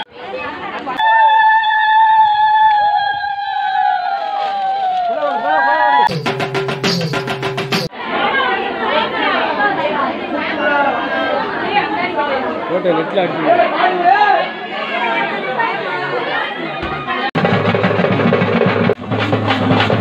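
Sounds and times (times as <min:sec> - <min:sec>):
crowd voices talking: 0:00.0 - 0:06.2, 0:07.7 - 0:17.4
music with rapid drumming: 0:06.1 - 0:07.9, 0:17.4 - 0:20.0.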